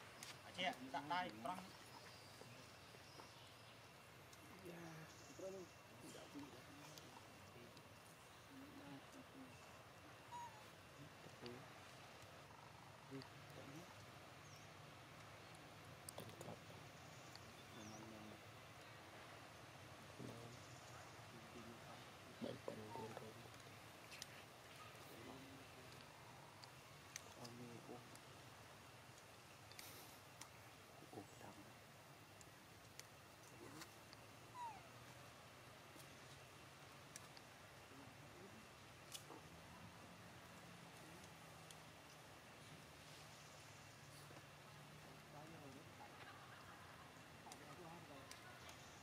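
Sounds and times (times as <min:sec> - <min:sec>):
young monkey squeaking call: 0:10.3 - 0:10.7, 0:34.5 - 0:34.9.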